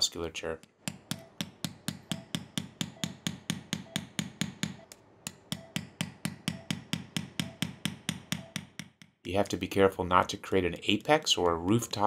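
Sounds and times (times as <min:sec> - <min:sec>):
mallet tapping metal chisel: 0:00.6 - 0:09.3.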